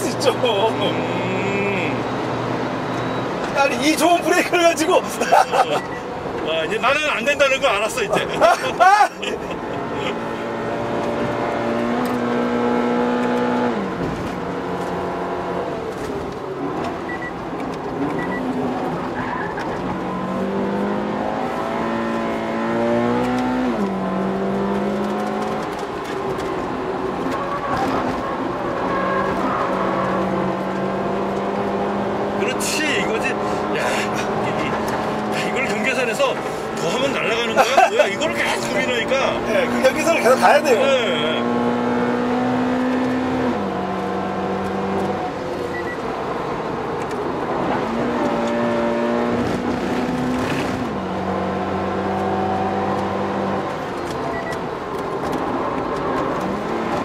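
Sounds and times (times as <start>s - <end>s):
car engine revving hard: 9.4s - 15.7s, 19.8s - 25.8s, 27.7s - 45.7s, 46.3s - 54.2s.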